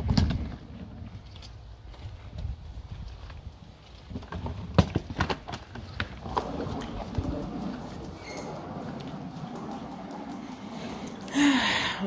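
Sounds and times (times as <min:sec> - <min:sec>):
suitcase wheels rattling on pavers: 0:00.0 - 0:12.0.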